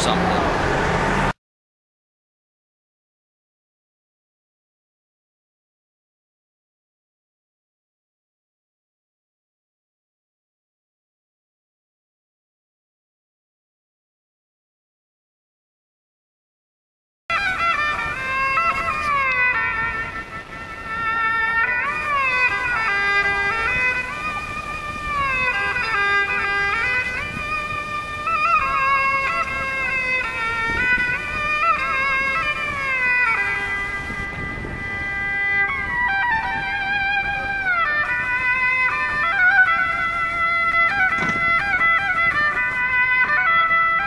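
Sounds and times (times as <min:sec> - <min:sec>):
bowed fiddle melody: 0:17.3 - 0:44.0.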